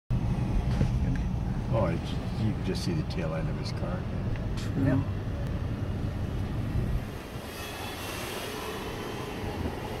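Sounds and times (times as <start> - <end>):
vehicle rumble: 0.1 - 10.0.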